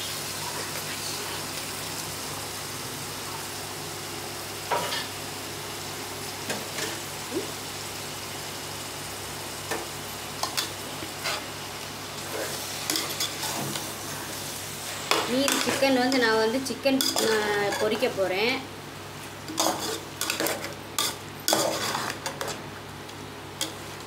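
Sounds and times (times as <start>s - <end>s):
chicken frying sizzle: 0.0s - 24.0s.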